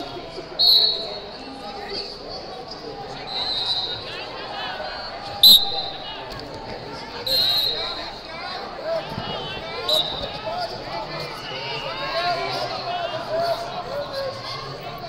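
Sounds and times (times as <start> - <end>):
chatter: 0.0 - 15.0
referee whistle blasts: 0.6 - 1.4, 3.2 - 4.2, 5.4 - 6.2, 7.2 - 8.2, 9.3 - 10.4.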